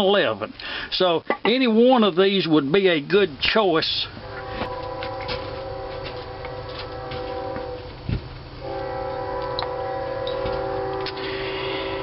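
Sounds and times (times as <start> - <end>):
drone of held tones: 4.2 - 8.0, 8.6 - 12.0.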